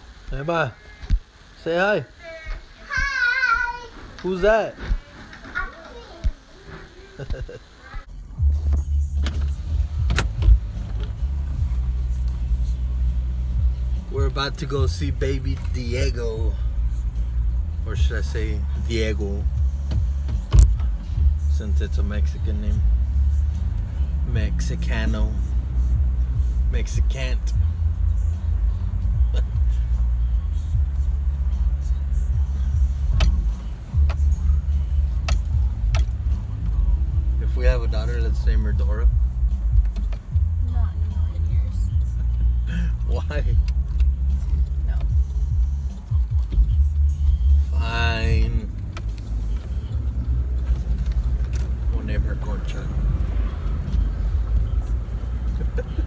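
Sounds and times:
car rumble inside cabin: 0:08.1 - 0:56.0
person speaking: 0:47.6 - 0:48.8.

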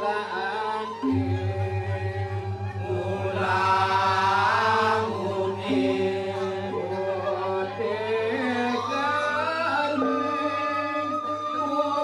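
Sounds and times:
lead voice chanting: 0:01.0 - 0:10.2
fast low pulse: 0:01.2 - 0:07.6.

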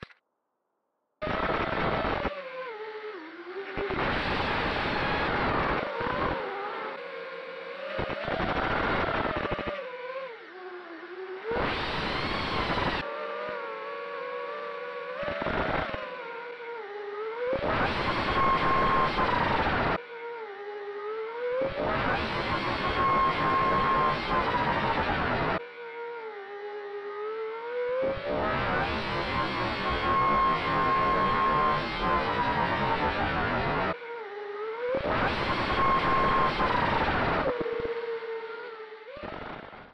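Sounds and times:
drone motors whining: 0:02.4 - 0:39.8
quadcopter motors whining: 0:22.3 - 0:39.8.

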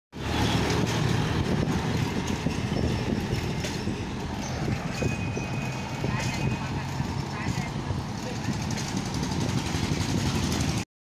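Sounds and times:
bicycle tyres rumbling on road: 0:00.2 - 0:10.8
bicycle rattles and clicks: 0:00.4 - 0:10.8.

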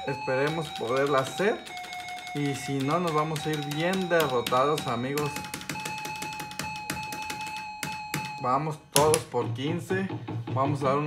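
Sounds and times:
slot machine electronic tone: 0:00.0 - 0:09.3.

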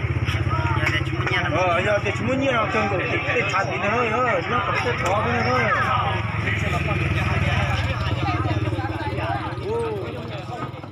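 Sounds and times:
men talking: 0:00.4 - 0:10.9.

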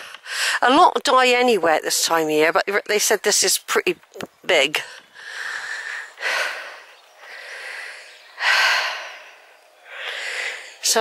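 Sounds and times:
person breathing: 0:04.8 - 0:10.9.

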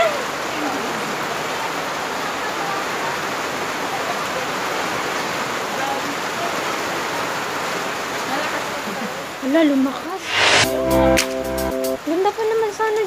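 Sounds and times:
steady rain falling: 0:00.0 - 0:10.2, 0:10.8 - 0:13.0.

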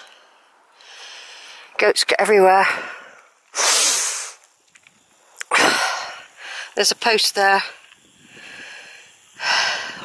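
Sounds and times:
person breathing out loudly: 0:08.2 - 0:10.0.

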